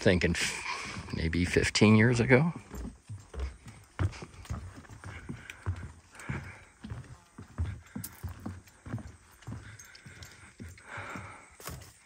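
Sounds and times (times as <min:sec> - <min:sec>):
footsteps on wooden boards: 0:00.0 - 0:12.0.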